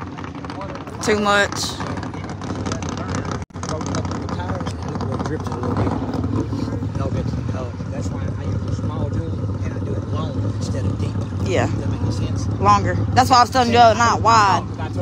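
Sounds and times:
distant car engine running: 0.0s - 15.0s
people talking indistinctly: 0.4s - 15.0s.

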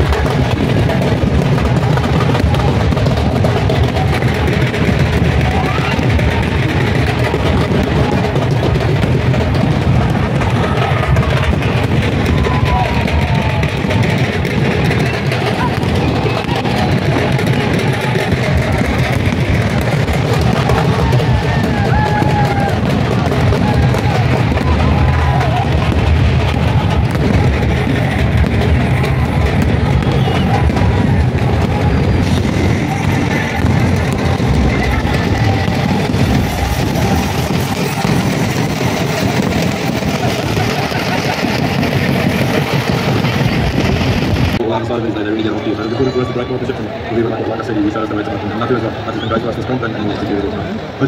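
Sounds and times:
music with drum beat over loudspeakers: 0.0s - 44.6s
crowd noise: 0.0s - 51.0s.

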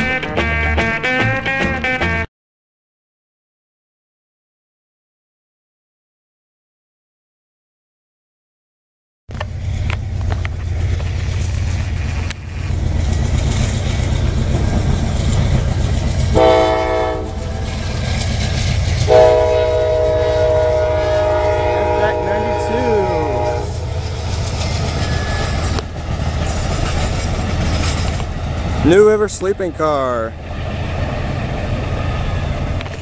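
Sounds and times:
low train rumble: 9.3s - 33.0s
train horn blasts: 16.3s - 17.5s, 19.0s - 23.9s.

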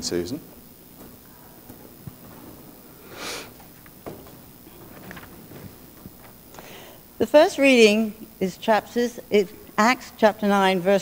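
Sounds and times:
woman sniffing: 3.0s - 3.6s.

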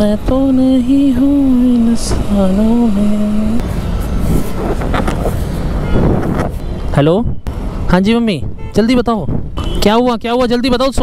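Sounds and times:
passing traffic: 0.0s - 11.0s
wind rushing over microphone: 3.3s - 7.5s, 8.3s - 9.6s.

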